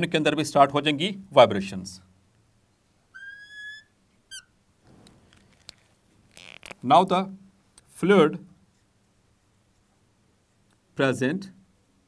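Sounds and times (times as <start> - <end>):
marker squeaking on glass: 3.1 - 4.6, 6.3 - 6.8.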